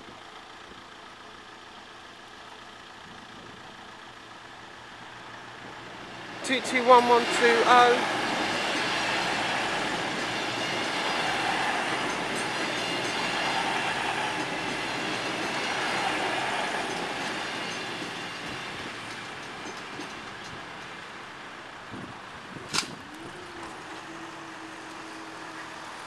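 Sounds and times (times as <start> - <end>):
diesel train passing: 0.2 - 26.0
train wheels clattering on rails: 5.2 - 26.0.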